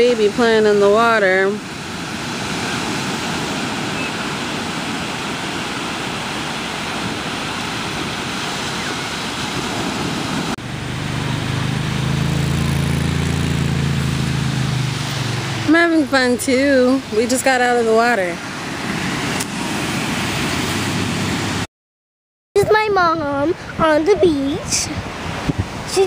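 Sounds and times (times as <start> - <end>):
ocean surf breaking: 0.0 - 21.7, 22.6 - 26.0.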